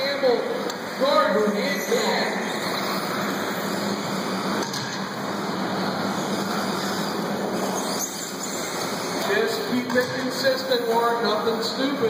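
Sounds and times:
indoor hall ambient din: 0:00.0 - 0:12.0
electric rc cars running: 0:00.6 - 0:11.8.

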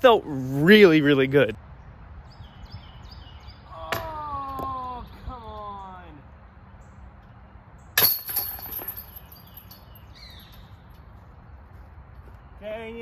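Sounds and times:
disc hitting metal chains: 0:08.0 - 0:10.0
chains jangling: 0:08.0 - 0:10.1.

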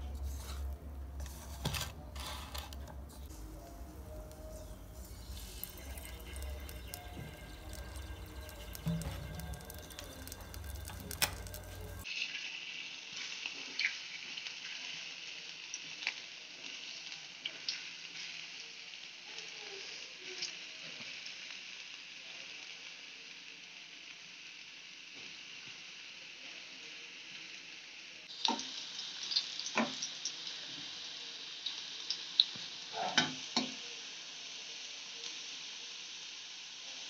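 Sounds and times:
fries sizzling in hot oil: 0:00.0 - 0:37.0.

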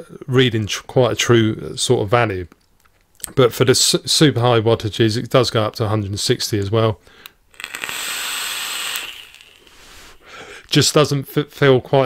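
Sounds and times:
vape air hissing with crackle: 0:07.5 - 0:10.3.

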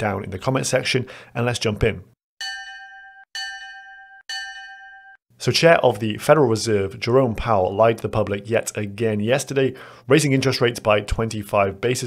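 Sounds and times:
bell chime ringing: 0:02.4 - 0:05.2.

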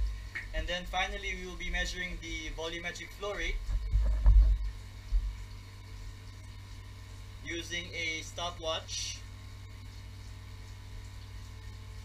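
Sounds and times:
water turbine humming: 0:00.0 - 0:12.0.

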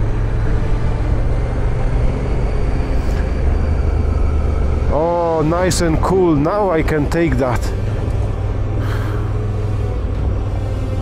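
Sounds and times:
motorcycle engine running: 0:00.0 - 0:06.4.

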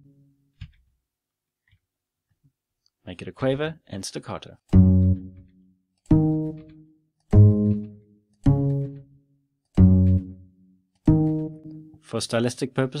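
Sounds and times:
plucked bass notes: 0:04.7 - 0:05.5, 0:06.1 - 0:09.2, 0:09.8 - 0:12.0.

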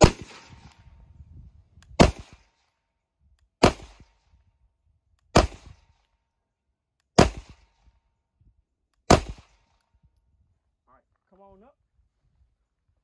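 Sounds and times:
pistol shots with echo: 0:03.6 - 0:04.0, 0:05.3 - 0:05.7, 0:07.2 - 0:07.7, 0:09.1 - 0:09.5.

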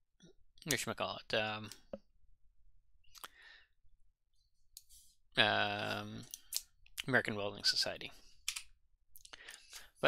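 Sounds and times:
soft breathing: 0:03.2 - 0:03.8.

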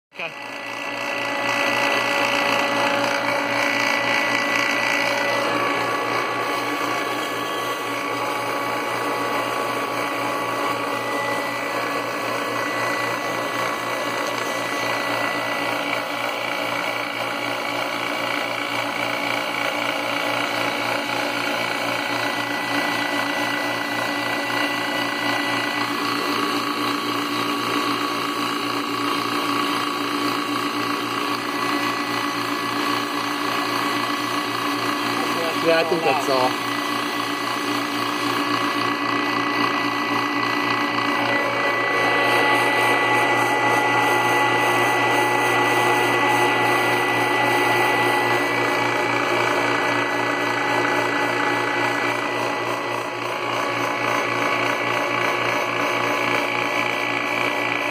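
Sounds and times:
machine humming and whining: 0:00.2 - 0:57.9.

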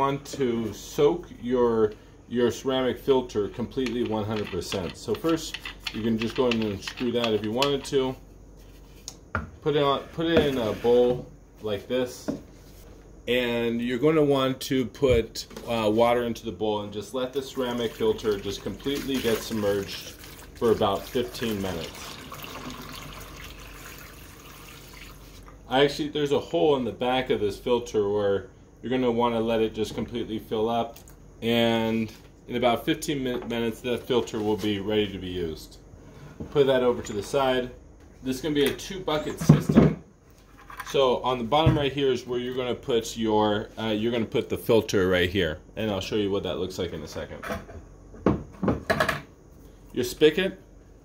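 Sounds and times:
water pouring into a bowl: 0:17.3 - 0:25.6.

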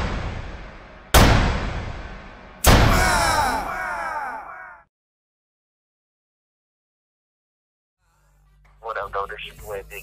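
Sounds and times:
deep cinematic boom impact: 0:00.0 - 0:03.0.

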